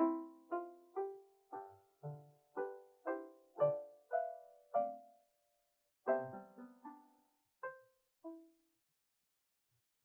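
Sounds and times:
soft piano notes: 0:00.0 - 0:05.1, 0:06.1 - 0:07.8.

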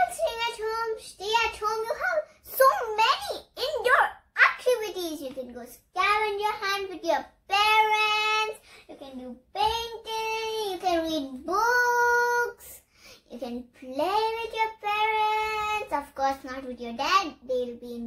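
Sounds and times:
girl singing unaccompanied: 0:05.5 - 0:18.0.

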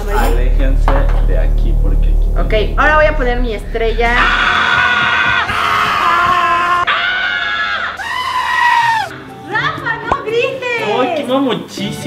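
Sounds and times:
young man screaming: 0:04.2 - 0:09.2.

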